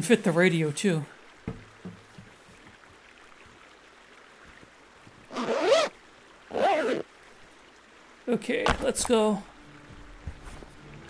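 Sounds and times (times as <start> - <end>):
faint river flowing: 0.0 - 11.0
bag zipper pulled closed: 5.3 - 5.9, 6.5 - 7.0.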